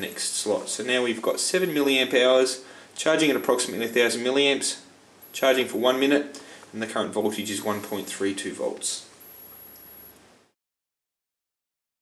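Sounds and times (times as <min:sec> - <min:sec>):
battery charger high-pitched whine: 0:05.2 - 0:06.2, 0:07.6 - 0:08.3, 0:09.2 - 0:10.2
light hiss: 0:05.2 - 0:10.3.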